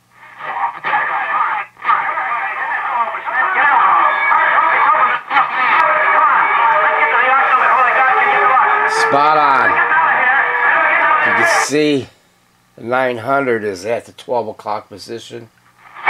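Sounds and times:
voice on radio speaker: 0.2 - 12.1.

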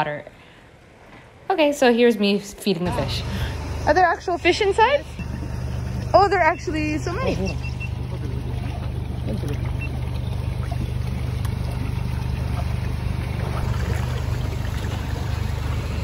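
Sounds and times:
low machine hum: 2.7 - 16.0
water splashing in fish tank: 4.9 - 16.0.

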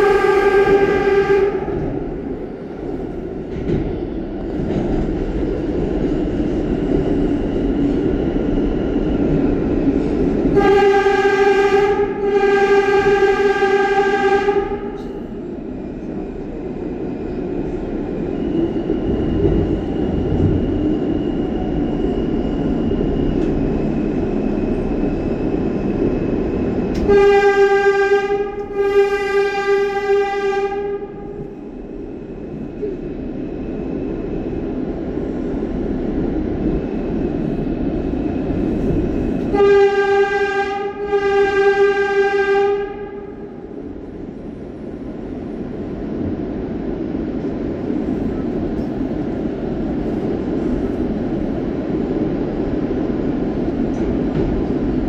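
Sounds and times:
subway train horn: 0.0 - 4.8, 10.1 - 18.1, 26.2 - 33.2, 38.5 - 44.4
subway car rumbling in tunnel: 0.0 - 55.0.

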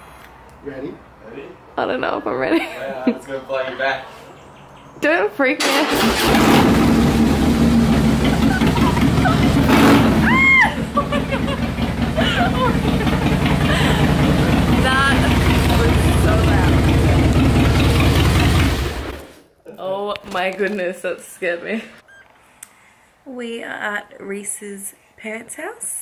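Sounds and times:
motorcycle engine idling: 6.7 - 19.3.

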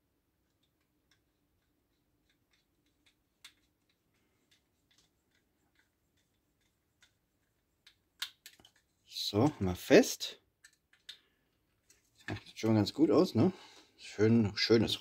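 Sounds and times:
plastic clicks: 0.4 - 9.6, 10.6 - 12.6.

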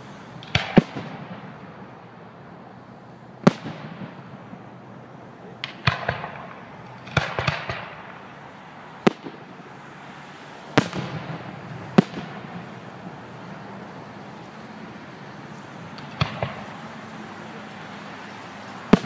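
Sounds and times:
fireworks bursting with sharp bangs: 0.0 - 19.0.

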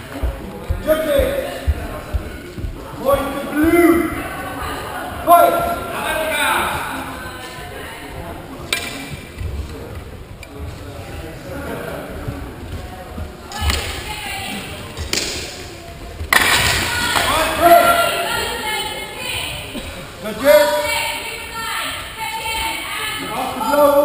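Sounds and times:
people shouting: 2.9 - 7.3, 16.4 - 19.5.

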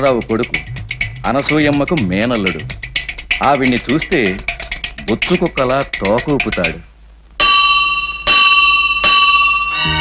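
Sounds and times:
metal gong struck with mallet: 7.4 - 9.8.

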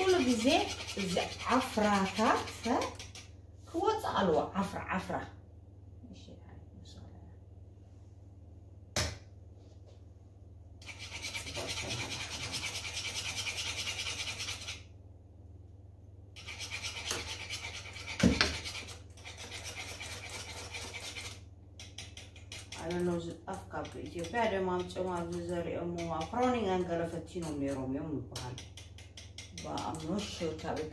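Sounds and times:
whisk scraping metal saucepan: 0.0 - 3.3, 10.8 - 14.8, 16.4 - 27.9.

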